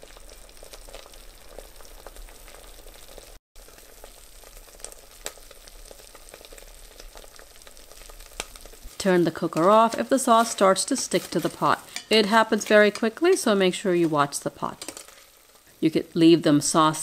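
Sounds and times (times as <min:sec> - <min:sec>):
sauce sizzling and bubbling: 0:00.0 - 0:17.0
small pops and spits: 0:06.9 - 0:10.7.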